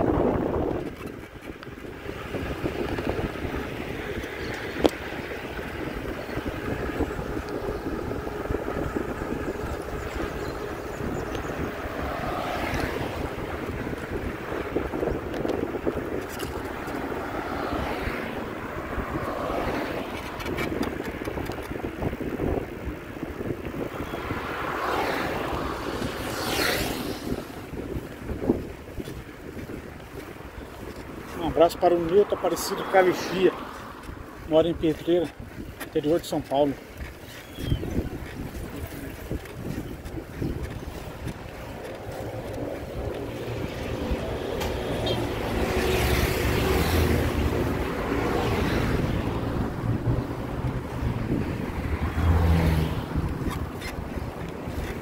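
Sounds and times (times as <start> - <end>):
traffic rumble: 0.0 - 55.0
wind on microphone: 0.0 - 55.0.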